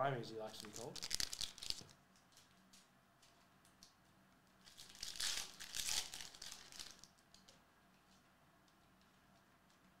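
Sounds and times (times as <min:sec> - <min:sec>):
wrapper tearing and crinkling: 0:00.6 - 0:02.0, 0:04.6 - 0:07.1.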